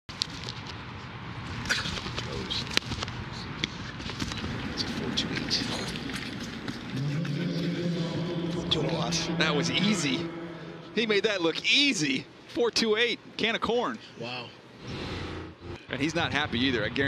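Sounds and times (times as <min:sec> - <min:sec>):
stadium room noise: 0:00.2 - 0:17.0
low steady hum: 0:00.8 - 0:17.0.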